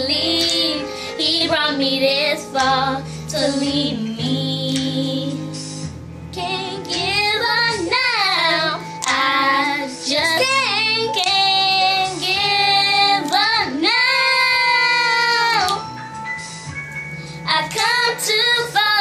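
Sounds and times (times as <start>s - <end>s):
girls singing gospel song: 0.0s - 16.0s, 17.3s - 19.0s.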